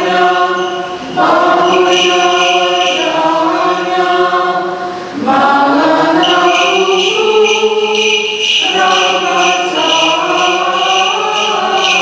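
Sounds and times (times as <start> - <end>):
choir singing a chant: 0.0 - 12.0.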